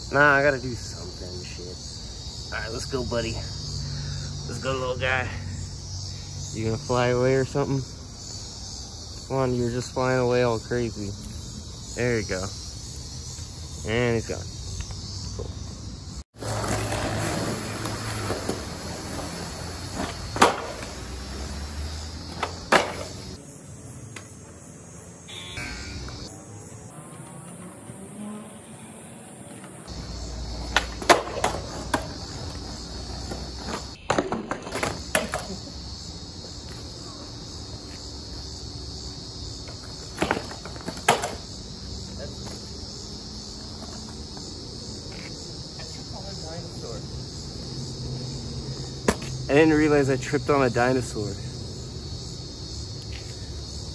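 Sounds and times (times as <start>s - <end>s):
high insect drone: 0.0s - 53.9s
skateboard clacks on concrete: 16.4s - 21.0s, 22.3s - 23.2s, 30.6s - 35.6s, 39.7s - 41.5s
skateboard wheels rolling: 16.4s - 24.6s, 26.0s - 38.5s, 39.1s - 46.1s.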